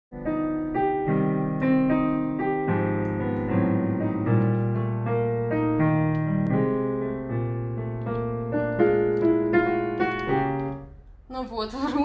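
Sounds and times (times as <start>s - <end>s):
digital piano chords: 0.1s - 11.2s.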